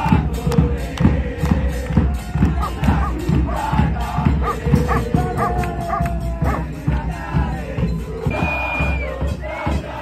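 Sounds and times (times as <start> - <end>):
drum beats: 0.0 - 10.0
fans chanting: 0.0 - 10.0
dog barking: 2.6 - 3.2, 4.4 - 6.6.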